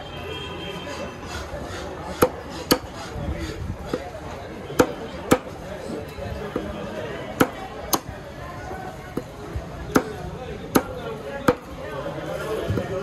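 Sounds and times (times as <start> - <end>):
knife chopping fish on wooden block: 1.7 - 3.0, 4.7 - 5.6, 7.4 - 8.1, 9.9 - 11.7.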